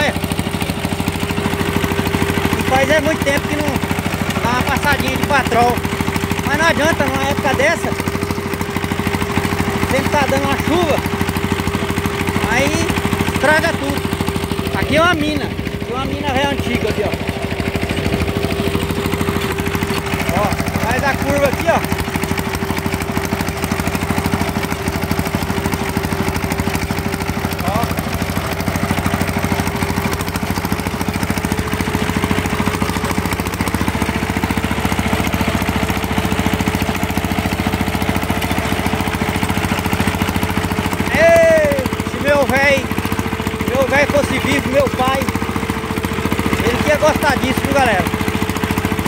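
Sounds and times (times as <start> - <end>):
diesel tractor engine running: 0.0 - 49.0.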